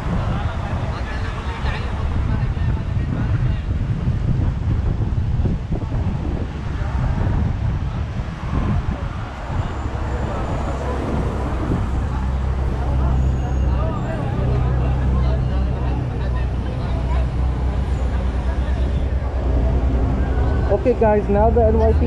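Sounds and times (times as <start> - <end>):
bus engine hum: 0.0 - 22.0
street traffic: 0.0 - 22.0
wind buffeting microphone: 0.0 - 22.0
indistinct voices: 8.0 - 22.0.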